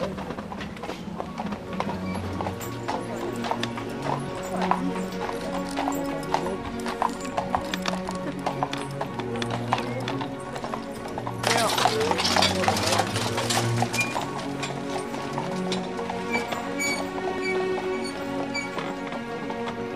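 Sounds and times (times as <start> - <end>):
horse hooves clip-clopping: 0.0 - 19.9
music with held notes: 0.0 - 19.9.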